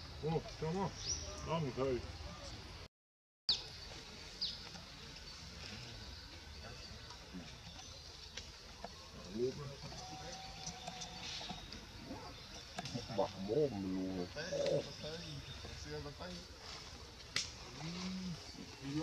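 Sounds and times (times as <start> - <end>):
indistinct voices talking: 4.7 - 19.0.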